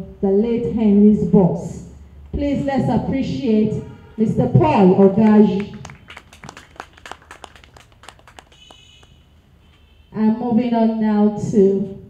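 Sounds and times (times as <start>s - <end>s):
faint scattered hand clapping: 5.2s - 9.2s.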